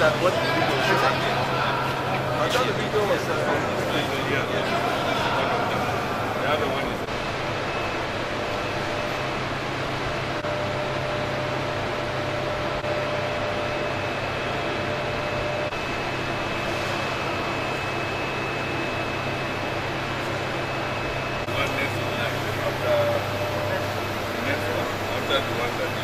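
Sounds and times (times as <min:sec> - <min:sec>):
faint steady whines: 0:00.0 - 0:26.0.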